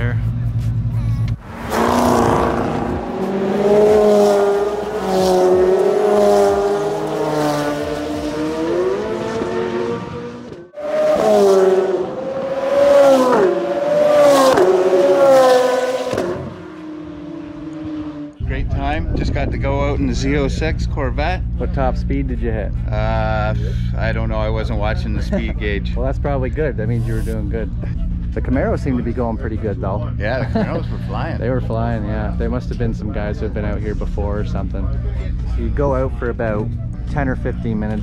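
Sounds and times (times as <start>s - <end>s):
race car engines accelerating: 0.0s - 18.7s
engine drone falling in pitch: 1.3s - 18.7s.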